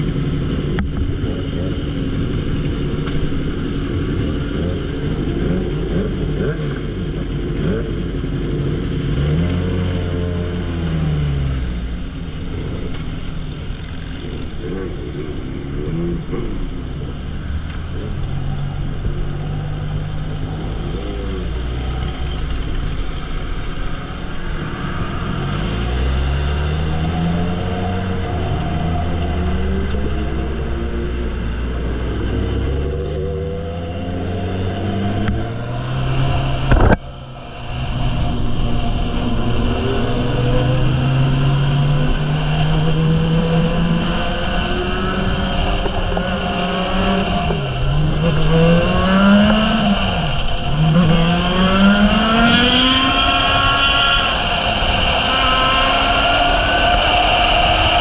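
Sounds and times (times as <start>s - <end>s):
motorcycle engine revving: 0.0s - 58.0s
wind and road noise: 0.0s - 58.0s.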